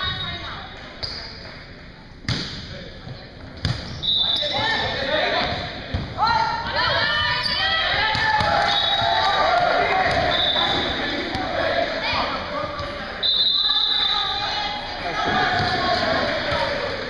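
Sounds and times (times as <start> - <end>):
players and spectators shouting: 6.2 - 13.2, 13.8 - 17.0
volleyball smacks ringing in hall: 7.9 - 11.6, 15.1 - 16.9.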